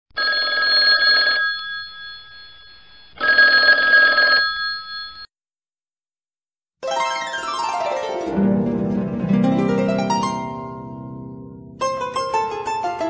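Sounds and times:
telephone bell ringing: 0.2s - 5.3s.

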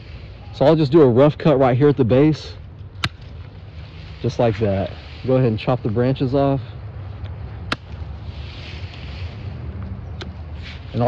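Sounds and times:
bamboo leaves rustling: 0.0s - 0.8s, 3.1s - 6.6s, 7.8s - 11.0s
clippers snipping branches: 2.8s - 5.1s, 7.2s - 11.0s.

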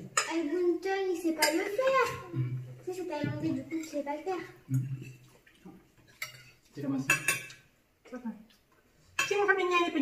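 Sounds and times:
cutlery clinking on plates: 6.0s - 7.7s, 9.1s - 9.9s.

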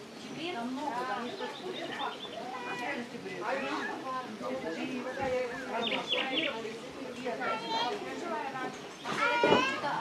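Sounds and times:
people talking: 0.2s - 10.0s.

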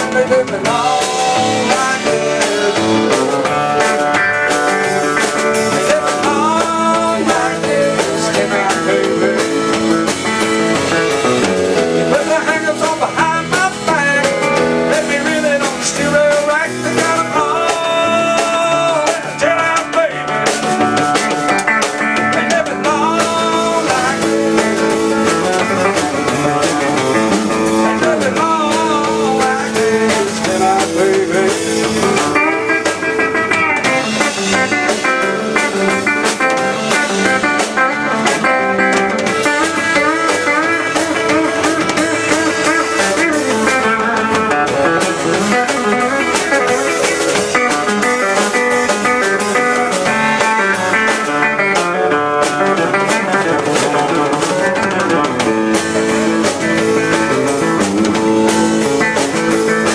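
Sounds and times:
drum kit: 0.0s - 59.9s
electric guitar leading: 0.0s - 59.9s.

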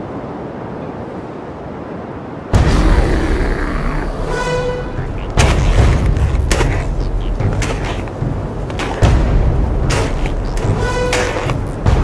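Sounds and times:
loud boom with rumble: 2.6s - 4.3s.

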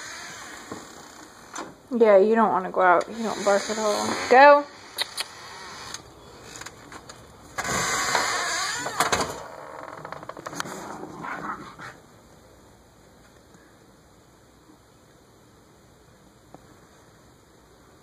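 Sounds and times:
storm door scraping open: 3.1s - 4.6s, 7.6s - 11.8s
rustling: 5.3s - 12.4s.

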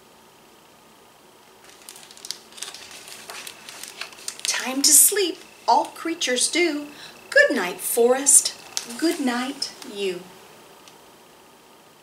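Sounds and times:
paper page rustling: 1.6s - 6.0s, 8.6s - 10.1s.

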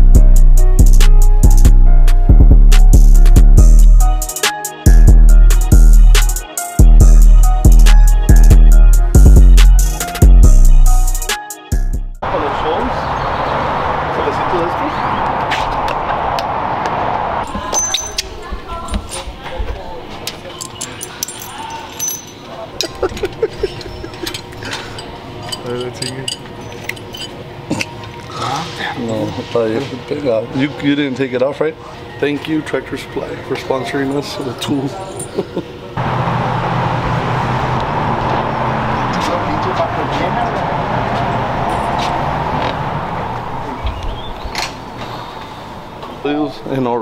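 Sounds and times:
background music: 0.0s - 12.2s
road traffic noise: 12.2s - 31.0s, 34.9s - 47.0s
metal hardware clinking: 17.5s - 18.5s, 20.4s - 27.9s.

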